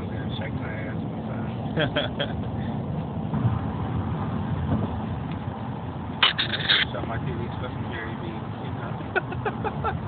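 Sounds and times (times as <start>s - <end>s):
car cabin road and engine noise: 0.0s - 10.0s.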